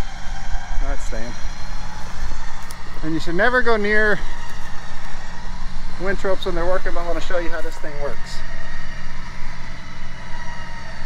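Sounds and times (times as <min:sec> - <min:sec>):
electric winch humming: 0:00.0 - 0:11.0
faint steady whine: 0:00.0 - 0:11.0.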